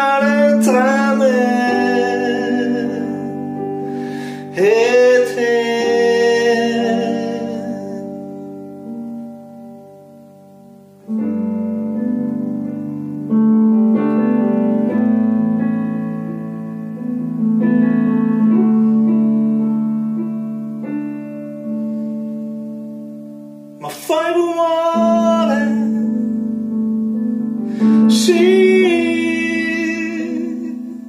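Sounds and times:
digital piano chords: 0:00.0 - 0:31.0.

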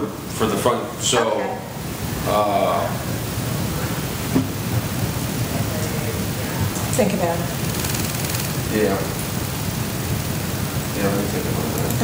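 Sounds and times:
low rumbling room hiss: 0:00.0 - 0:12.0.

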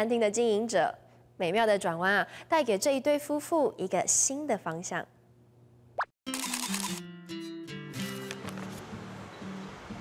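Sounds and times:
light music: 0:06.3 - 0:10.0.

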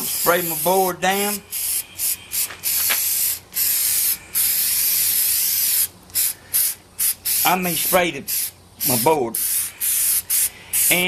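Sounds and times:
aerosol spray hissing: 0:00.0 - 0:11.0.

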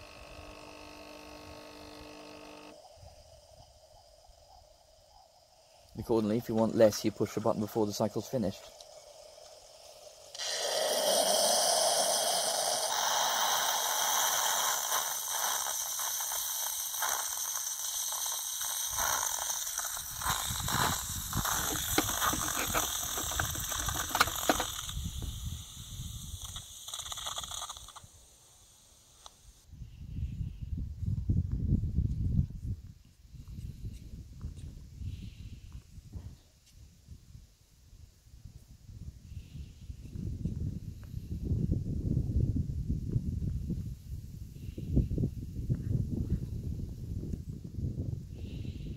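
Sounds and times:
machine sputtering and spitting: 0:00.0 - 0:02.8, 0:06.6 - 0:28.1
coffee pod machine hissing: 0:00.0 - 0:30.6, 0:48.4 - 0:48.9.

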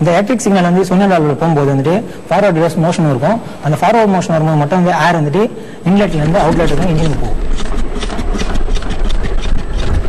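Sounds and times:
air piston engine running: 0:05.4 - 0:10.0.

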